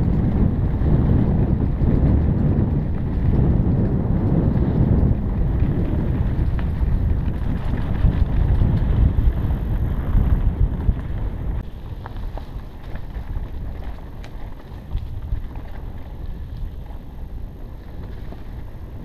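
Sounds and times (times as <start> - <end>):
bike rolling on dirt trail: 0.0 - 19.0
wind buffeting microphone: 0.0 - 19.0.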